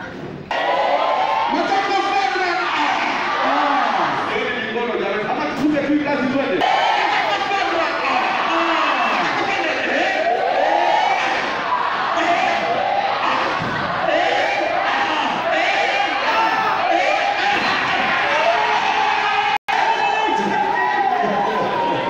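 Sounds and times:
crowd calling out and cheering: 0.0 - 22.0.

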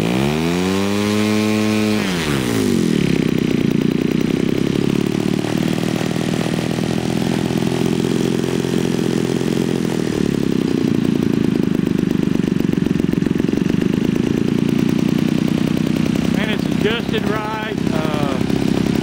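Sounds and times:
model airplane engine running: 0.0 - 19.0.

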